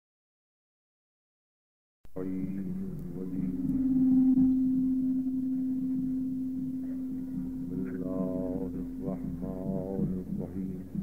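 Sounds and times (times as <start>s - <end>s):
faint low background noise: 2.1s - 11.0s
steady low hum: 2.1s - 11.0s.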